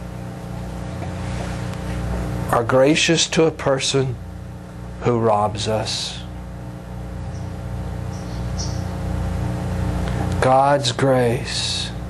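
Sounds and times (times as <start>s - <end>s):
low steady drone: 0.0s - 12.0s.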